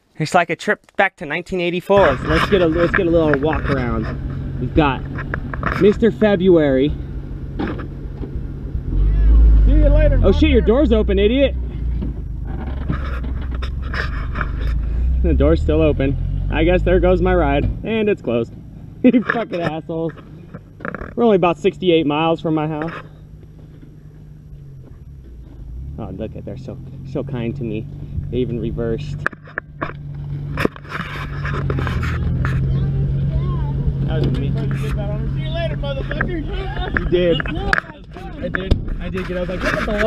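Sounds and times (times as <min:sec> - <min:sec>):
tyres crunching on dirt: 0:01.8 - 0:40.0
pickup truck engine rumble: 0:01.9 - 0:40.0
footsteps crunching on dirt: 0:23.0 - 0:26.0.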